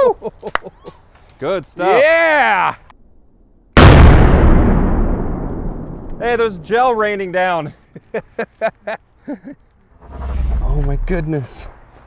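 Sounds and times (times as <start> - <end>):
dynamite blast: 3.8 - 6.6.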